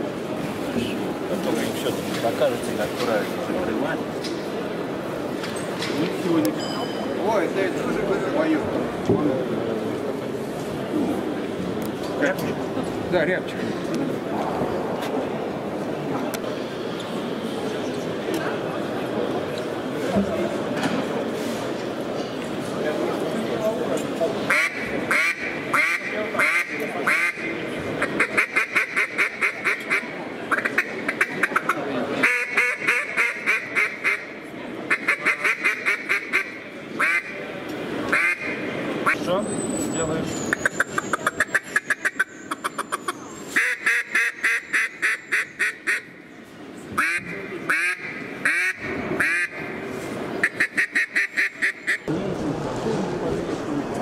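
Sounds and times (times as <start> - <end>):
duck call quacking: 24.5 - 34.3, 34.9 - 37.4, 38.1 - 38.6, 43.6 - 46.1, 47.0 - 49.7, 50.4 - 52.1.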